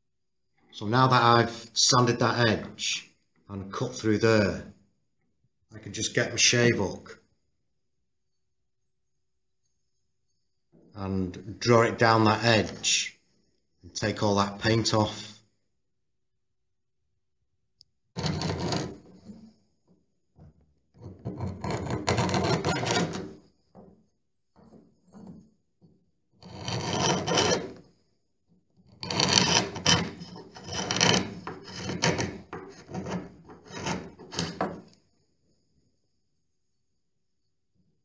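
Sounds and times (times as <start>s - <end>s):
scraper rasping paint off wood: 26.4s - 27.8s, 29.0s - 34.6s.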